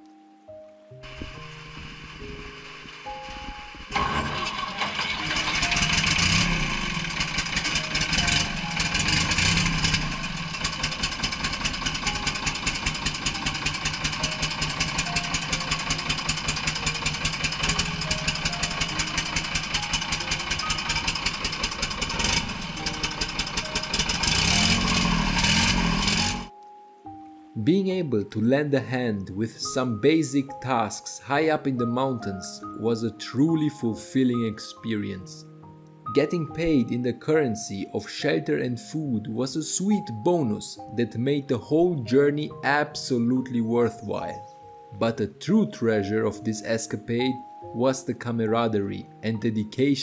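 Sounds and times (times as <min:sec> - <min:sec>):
background music: 0:00.0 - 0:50.0
winch engine running: 0:01.0 - 0:26.5.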